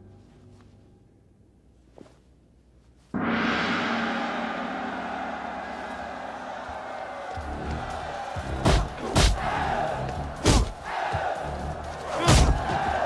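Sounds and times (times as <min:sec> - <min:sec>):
gong ringing: 0:03.2 - 0:07.3
sharp punch impacts: 0:12.3 - 0:12.7.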